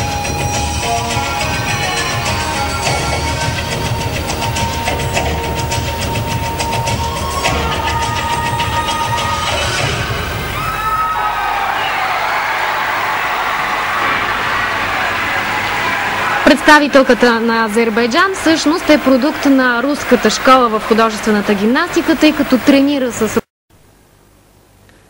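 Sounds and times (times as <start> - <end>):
music with steady beat: 0.0 - 10.2
crowd applause and cheering: 0.0 - 22.5.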